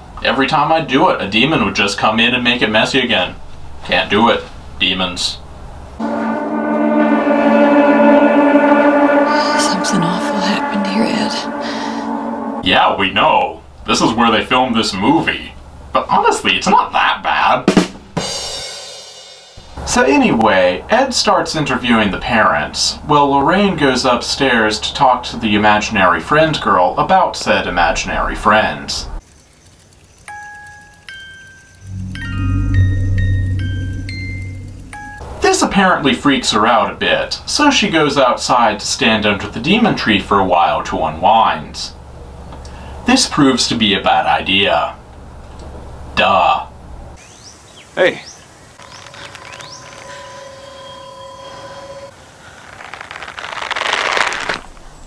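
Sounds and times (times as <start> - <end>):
low ominous drone: 6.0 - 13.0, 31.8 - 35.4
rushing scare sting: 6.0 - 13.0, 31.8 - 35.4
steady held tone: 6.0 - 13.0, 31.8 - 35.4, 48.8 - 52.1.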